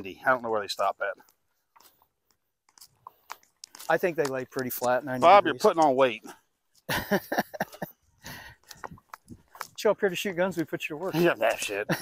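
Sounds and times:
man speaking: 0.0 - 1.3, 3.8 - 6.4, 9.7 - 12.0
footsteps on dry grass: 0.0 - 6.8, 8.0 - 12.0.

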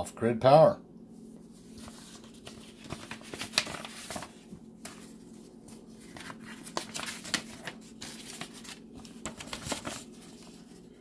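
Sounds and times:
paper rustling and crinkling: 1.4 - 11.0.

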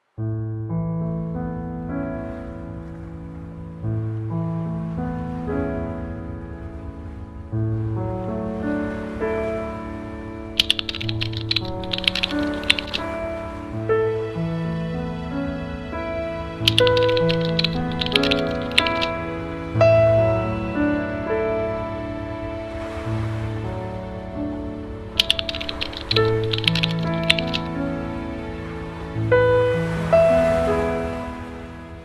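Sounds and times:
typing keystroke clicks: 10.6 - 13.1, 16.6 - 19.1, 25.2 - 27.7
music of sustained chords: 13.1 - 25.2, 27.2 - 32.0.

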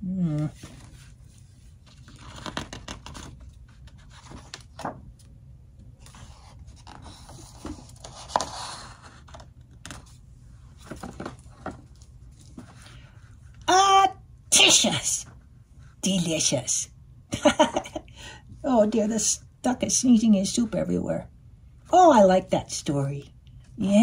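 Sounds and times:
book page turning: 0.4 - 13.7
paper rustling: 0.5 - 5.3, 5.9 - 13.7
person speaking: 13.6 - 15.3, 16.0 - 16.9, 18.6 - 21.3, 21.9 - 24.0.

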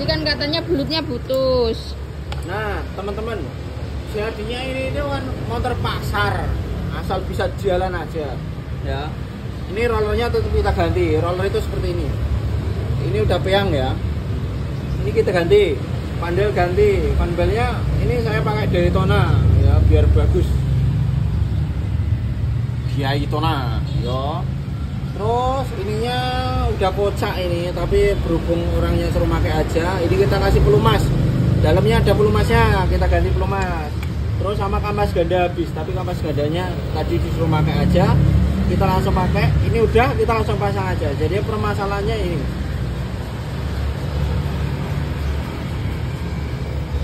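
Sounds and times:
vehicle engines rumbling: 0.0 - 47.0.

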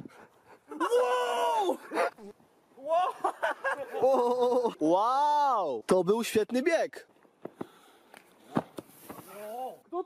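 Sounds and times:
soft thumps of feet on sand: 7.2 - 9.8.

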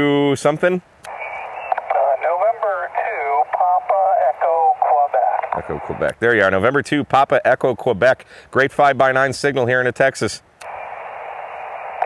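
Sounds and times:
thin narrow-band radio speech: 1.1 - 6.1
radio band noise hiss: 1.1 - 6.6, 10.6 - 12.0
man talking close: 1.9 - 10.4.

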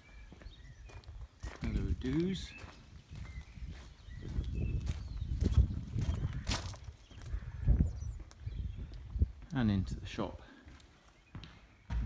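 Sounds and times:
footsteps walking outdoors: 0.0 - 12.0.

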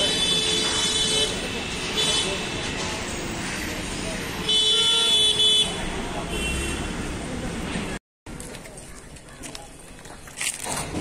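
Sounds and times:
vehicle horns honking: 0.0 - 2.7, 4.4 - 7.0
voices: 0.0 - 10.2
street noise: 0.0 - 11.0.

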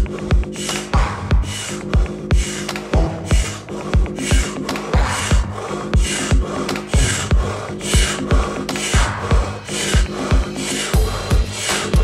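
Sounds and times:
music with bass beat: 0.0 - 12.0
rapid forceful breathing: 0.0 - 12.0.

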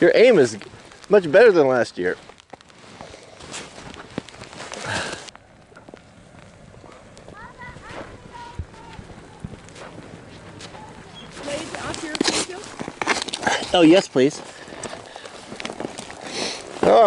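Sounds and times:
footsteps crunching through snow: 0.0 - 5.3, 6.9 - 17.0.

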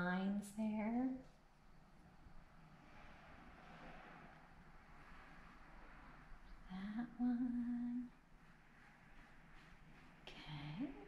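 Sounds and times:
paintbrush scratching on canvas: 8.3 - 11.0.

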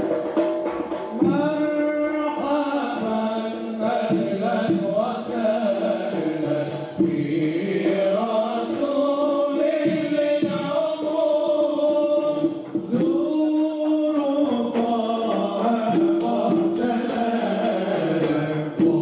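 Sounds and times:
voices chanting a slow song: 1.6 - 19.0.

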